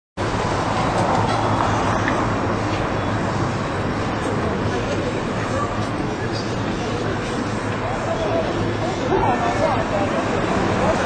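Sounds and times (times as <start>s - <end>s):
road traffic: 0.2s - 11.0s.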